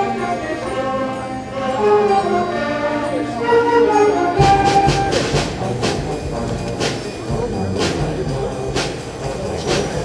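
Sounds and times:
concert band playing: 0:00.0 - 0:10.0.

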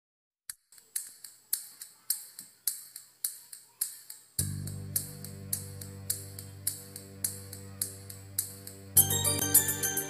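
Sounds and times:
rhythmic percussion ticks: 0:00.5 - 0:10.0.

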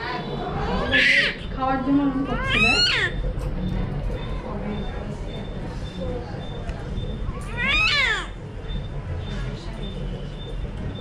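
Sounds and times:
newborn baby crying: 0:02.3 - 0:03.2.

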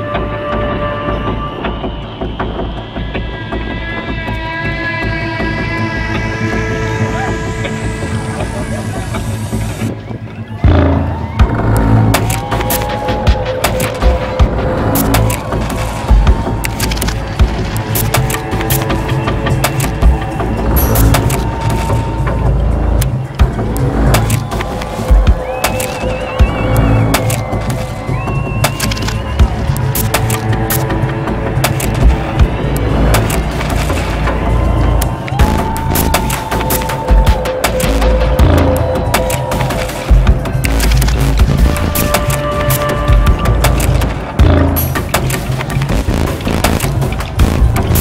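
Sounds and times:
heavy drum beats: 0:10.6 - 0:48.0.

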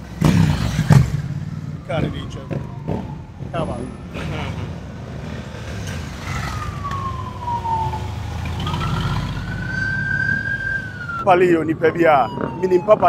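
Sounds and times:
low rumble of vehicle engines: 0:00.0 - 0:13.0
siren wailing: 0:01.4 - 0:13.0.

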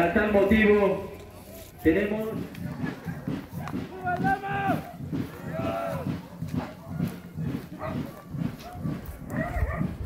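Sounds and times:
man's voice: 0:00.0 - 0:01.2, 0:01.8 - 0:02.6
hooves on stone road: 0:00.0 - 0:10.0.

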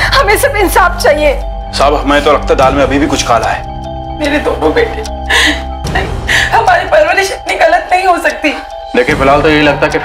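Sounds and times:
background music: 0:00.0 - 0:10.0
woman crying: 0:04.2 - 0:07.4.

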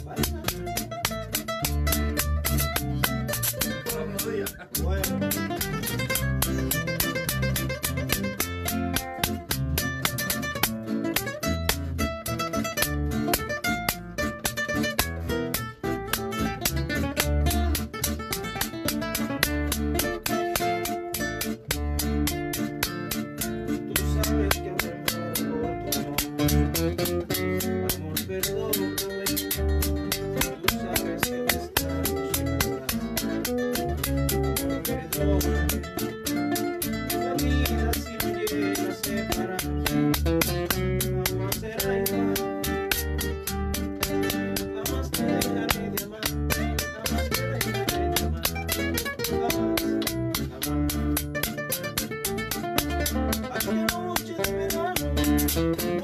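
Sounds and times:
acoustic guitars playing: 0:00.0 - 0:56.0
low bass notes: 0:00.0 - 0:56.0.

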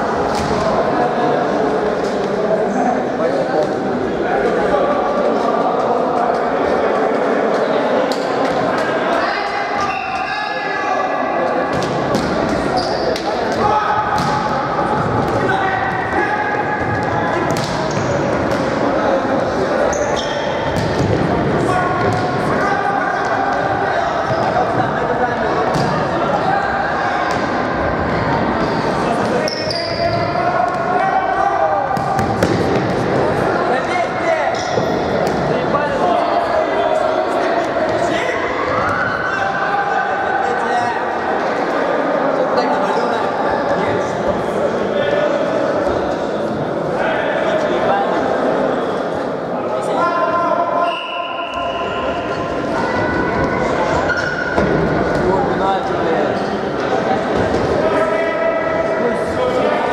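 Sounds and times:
players shouting: 0:08.6 - 0:41.7.

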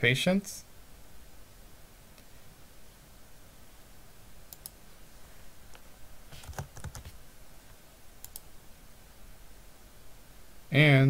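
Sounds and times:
mouse clicks: 0:04.5 - 0:04.8, 0:08.2 - 0:08.5
computer keyboard keystrokes: 0:06.4 - 0:07.2.

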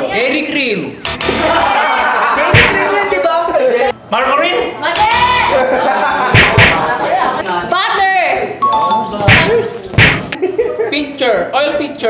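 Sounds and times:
background music: 0:08.5 - 0:09.3
ding-dong chime: 0:08.6 - 0:09.2.

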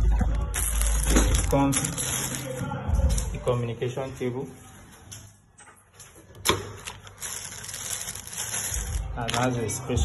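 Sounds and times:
plastic wrapping crinkling: 0:00.2 - 0:03.3, 0:06.7 - 0:09.7.

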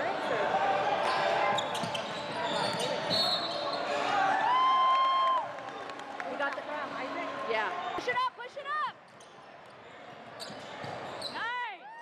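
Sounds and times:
sneakers squeaking on hardwood floor: 0:01.2 - 0:03.9, 0:10.0 - 0:11.6.

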